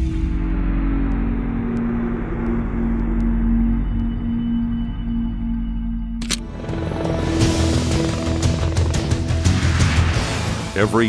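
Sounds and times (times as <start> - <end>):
deep rumble: 0.0 - 6.2
low hum: 0.0 - 10.6.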